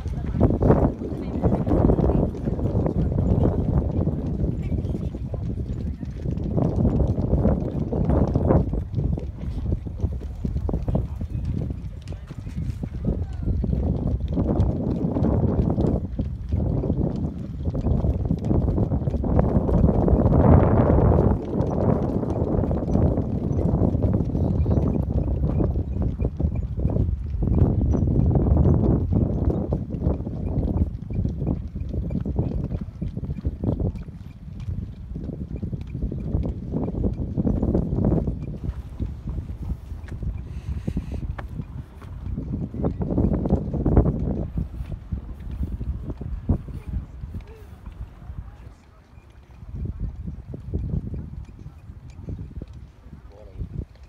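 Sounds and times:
people's voices: 0.0 - 14.2, 46.5 - 50.2, 53.0 - 53.7
footsteps on rocky ground: 0.0 - 24.8, 37.6 - 48.2
sharp clattering steps: 0.0 - 54.0
wind on microphone: 0.0 - 54.0.

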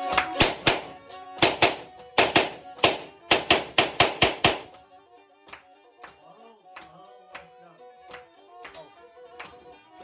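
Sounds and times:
faint bowed fiddle notes: 0.0 - 3.2, 4.7 - 10.0
sharp loud knocks: 0.4 - 4.8.

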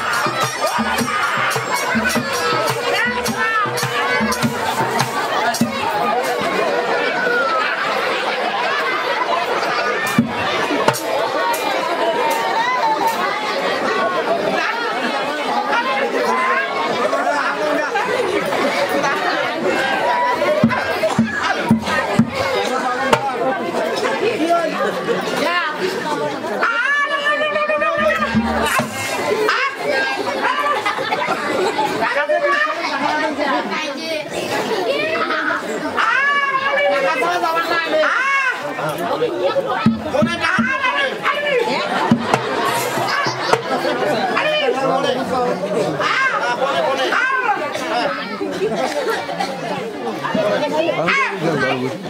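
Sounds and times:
exclamations: 0.0 - 6.1, 26.6 - 30.8
crowd chatter: 0.0 - 52.0
people talking loudly: 0.0 - 52.0.

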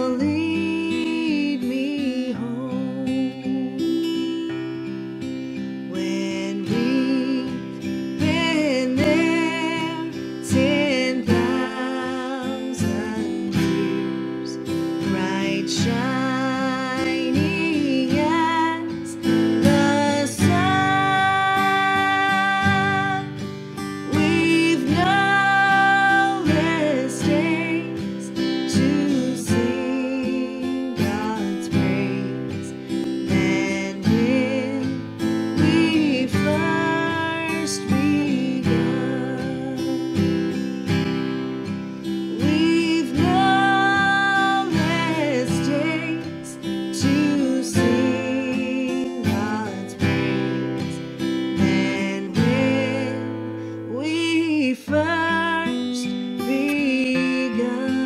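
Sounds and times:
woman singing slowly: 0.0 - 4.3, 5.8 - 40.2, 42.3 - 50.7, 51.4 - 58.0
strummed acoustic guitar: 0.0 - 58.0.

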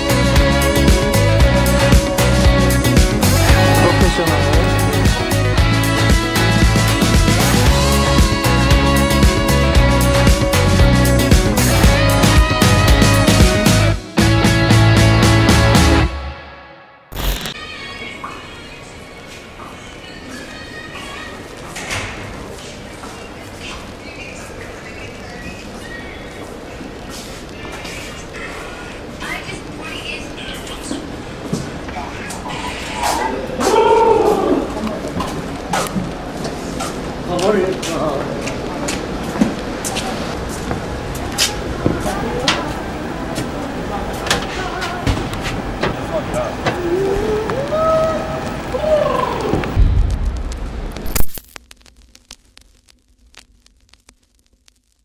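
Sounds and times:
steady hubbub: 0.0 - 16.0, 26.3 - 49.8
music: 0.0 - 17.6
echoing arena background noise: 17.4 - 49.8
faint indistinct voices: 17.5 - 36.5, 37.2 - 49.7
knocks or footsteps: 44.2 - 47.7.

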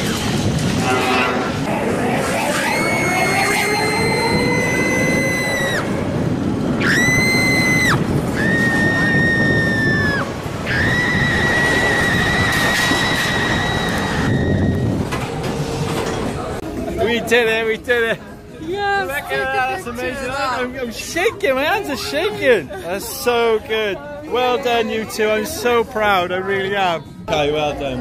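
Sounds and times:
coaster car rumbling on track: 0.0 - 20.2
riders screaming: 2.4 - 6.0.

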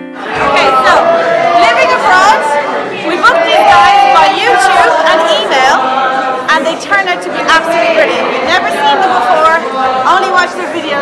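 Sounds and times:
many people talking: 0.0 - 11.0
music playing: 0.0 - 11.0.

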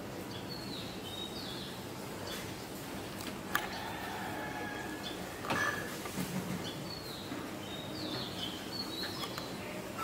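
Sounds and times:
small birds chirping: 0.0 - 2.9, 6.5 - 10.0
background noise: 0.0 - 10.0.

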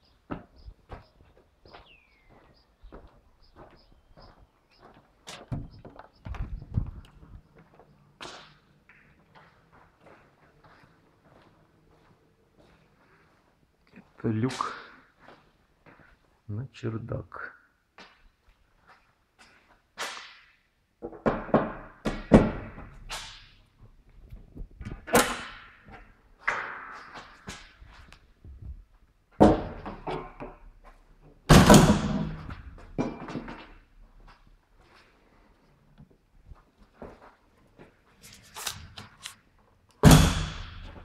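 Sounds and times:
footsteps on bare floor: 0.2 - 13.6, 36.5 - 39.2
attic ladder knocks and thuds: 21.0 - 23.4, 29.4 - 30.6, 31.4 - 33.7, 40.0 - 41.0.

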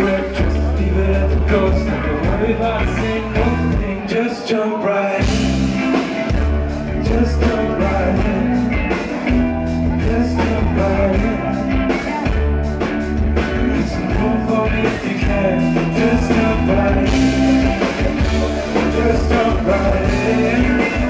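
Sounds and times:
man singing: 0.0 - 12.6, 13.2 - 21.0
live rock band playing: 0.0 - 21.0.

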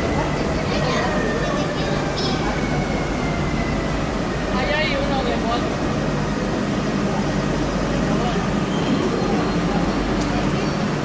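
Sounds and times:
electric train humming: 0.0 - 11.0
passengers' voices: 0.0 - 11.0.

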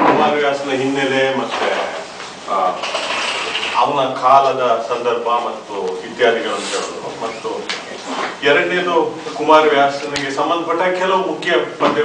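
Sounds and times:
man speaking: 0.0 - 2.8, 3.8 - 12.0.

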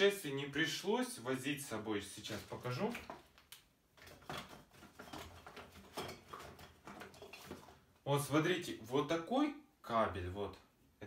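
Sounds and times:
small objects knocking and clicking: 2.4 - 7.8.

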